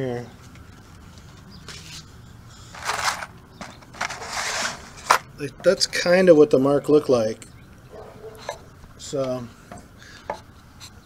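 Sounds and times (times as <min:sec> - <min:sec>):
rustling and scraping: 0:00.4 - 0:05.3.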